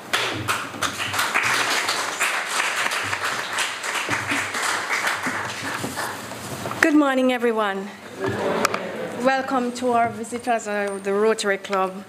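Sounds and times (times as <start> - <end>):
crowd applauding: 0.0 - 6.4.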